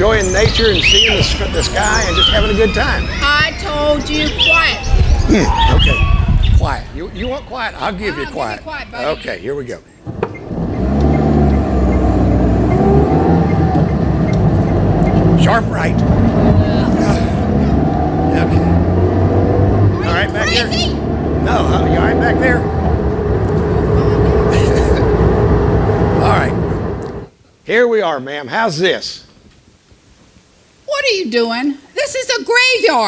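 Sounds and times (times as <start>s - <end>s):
car engine running: 10.0s - 27.3s.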